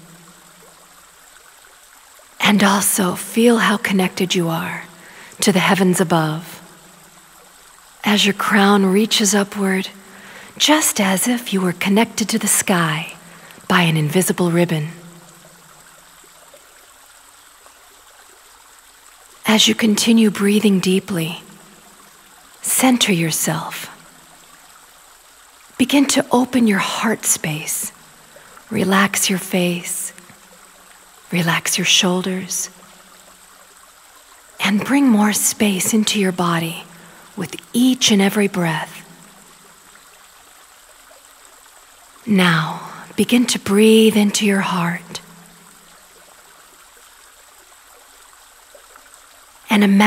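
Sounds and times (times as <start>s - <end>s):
faint steady hiss: 0.0s - 50.0s
stream trickling: 0.0s - 50.0s.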